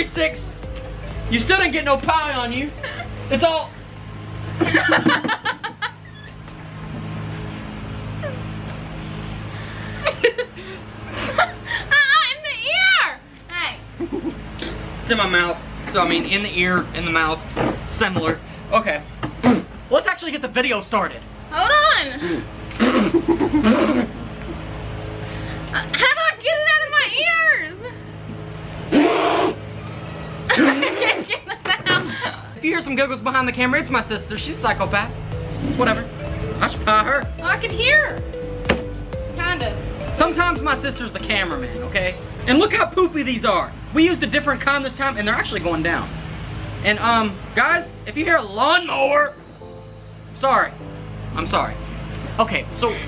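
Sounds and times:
steady low hum: 0.0 - 53.0
person laughing and giggling: 2.7 - 3.4, 4.6 - 6.4, 9.8 - 12.1, 14.0 - 14.4, 22.3 - 24.3, 30.5 - 32.6.

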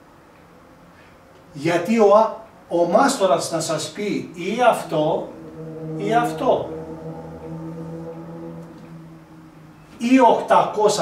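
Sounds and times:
man humming low: 4.4 - 10.5.

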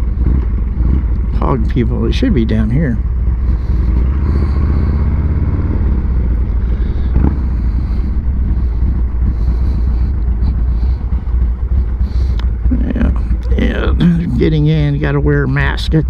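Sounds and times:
motorcycle engine running low: 0.0 - 16.0.

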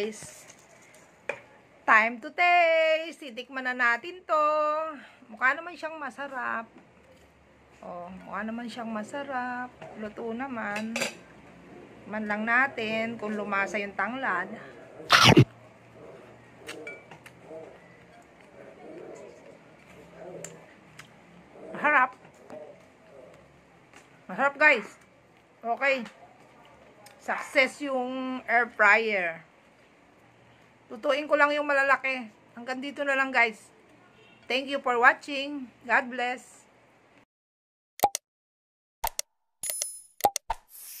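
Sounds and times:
soft low murmurs: 17.4 - 24.2.

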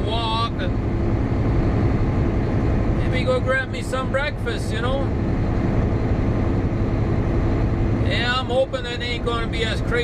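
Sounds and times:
diesel truck engine drone: 0.0 - 10.0
road and wind noise: 0.0 - 10.0.

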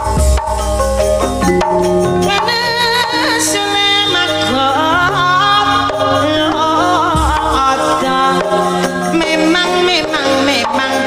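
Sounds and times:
gamelan music through a pa: 0.0 - 11.0.

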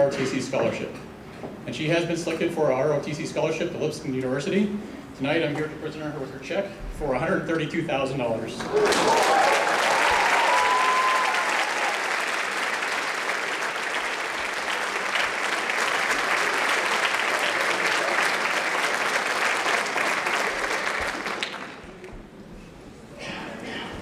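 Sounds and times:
audience applauding: 8.7 - 22.2.

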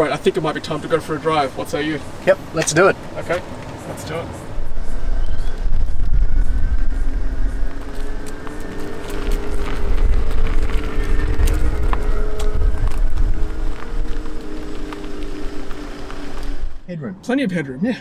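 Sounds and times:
electric car hum: 0.0 - 16.9
tyres and wind rumble: 0.0 - 18.0.

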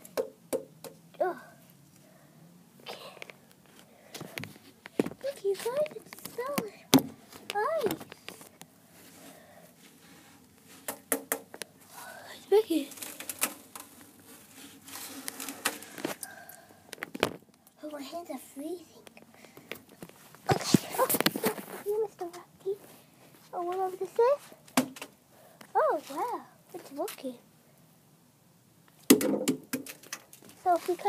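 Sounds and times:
child's voice: 1.2 - 1.6, 5.2 - 8.4, 12.0 - 13.0, 17.8 - 19.1, 20.5 - 22.9, 23.5 - 24.5, 25.7 - 27.4, 30.6 - 31.0
sharp clicks and knocks: 10.9 - 11.7, 29.1 - 30.4.

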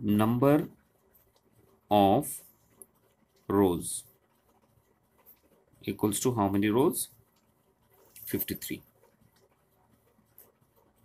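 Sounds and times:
pen ticking on paper: 2.6 - 11.0.

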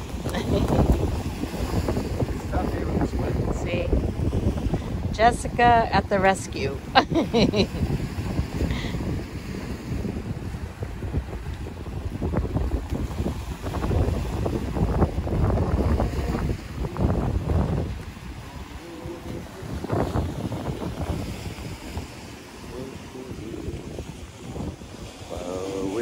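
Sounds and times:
sea washing on rocky shore: 0.0 - 26.0
wind buffeting microphone: 0.0 - 26.0.

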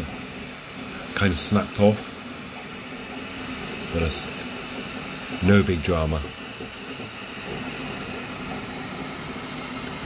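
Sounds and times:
three-d printer humming: 0.0 - 10.0.

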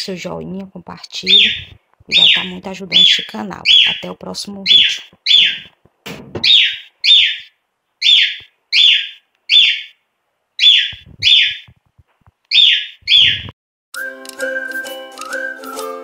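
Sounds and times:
bird whistling: 1.3 - 4.0, 4.7 - 5.7, 6.5 - 10.0, 10.6 - 11.7, 12.5 - 16.0
music: 14.0 - 16.0.

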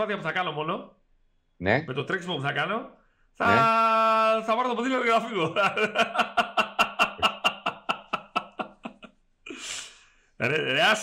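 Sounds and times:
man laughing heartily: 5.3 - 9.7.

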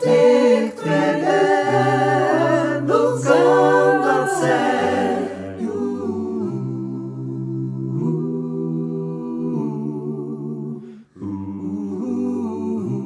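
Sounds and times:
vocal group singing a cappella: 0.0 - 13.0.

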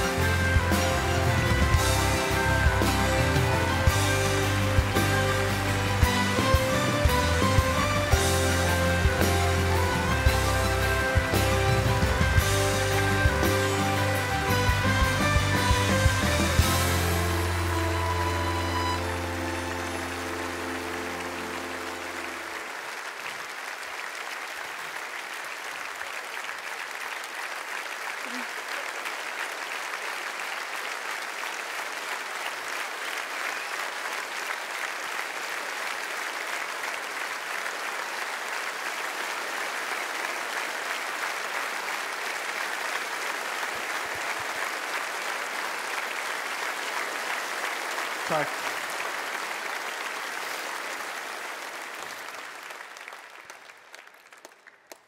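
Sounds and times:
band holding a chord: 0.0 - 22.6
audience applauding: 0.0 - 55.0.

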